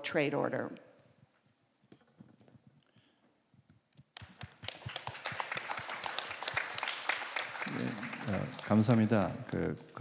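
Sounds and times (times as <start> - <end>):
applause: 4.2 - 9.6.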